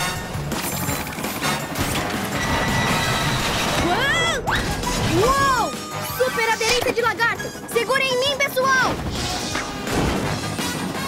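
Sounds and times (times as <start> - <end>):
action music: 0.0 - 11.0.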